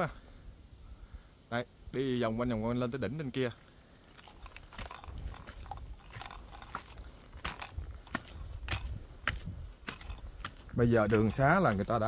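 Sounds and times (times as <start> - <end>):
grit crunching underfoot: 3.4 - 12.0
footsteps on stone steps: 4.1 - 12.0.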